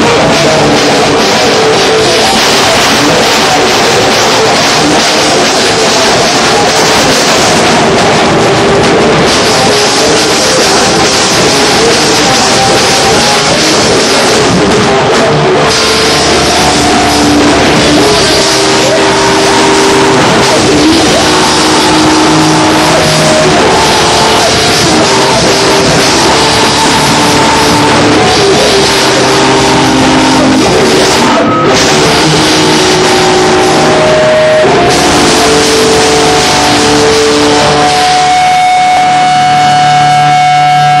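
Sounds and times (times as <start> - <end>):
distorted electric guitars: 0.0 - 41.0
drums and cymbals: 0.0 - 41.0
rock band playing loudly: 0.0 - 41.0.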